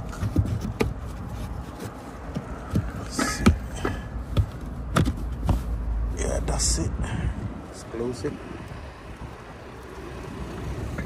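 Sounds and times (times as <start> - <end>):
hand patting carpeted cover: 0.0 - 5.7.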